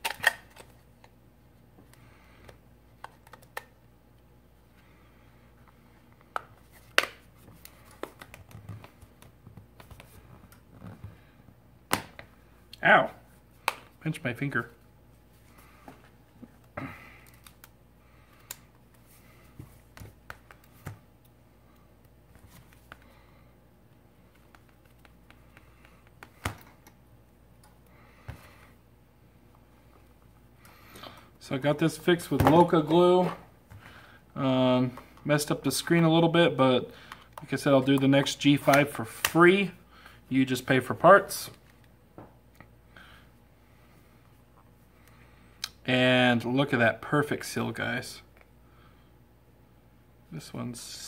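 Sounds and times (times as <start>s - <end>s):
fingers handling a smartphone: 2.4s - 3.7s, 24.2s - 26.8s.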